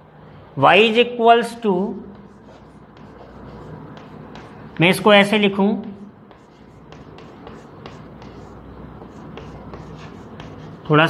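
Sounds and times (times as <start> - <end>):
chalk tapping and scraping on blackboard: 2.1 - 11.0.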